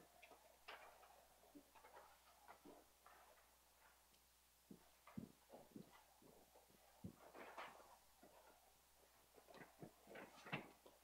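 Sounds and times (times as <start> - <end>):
faint ticks and taps: 0.1 - 11.0.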